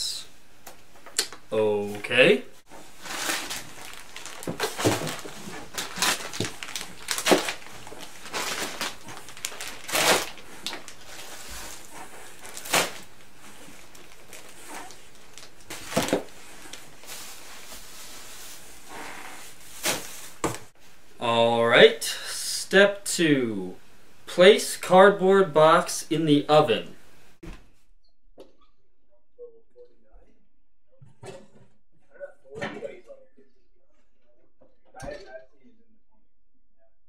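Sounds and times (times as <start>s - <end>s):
packages rustling and crinkling: 2.7s - 20.7s
items knocking against cardboard box: 3.2s - 10.8s, 15.7s - 16.3s.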